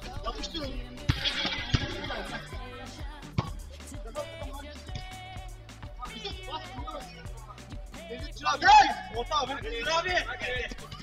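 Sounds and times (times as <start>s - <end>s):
men's voices: 0.0s - 11.0s
music with steady bass line: 0.0s - 11.0s.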